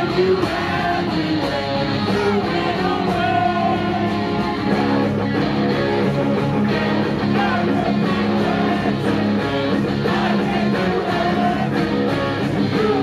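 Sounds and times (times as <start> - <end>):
pop-punk band playing live: 0.0 - 13.0.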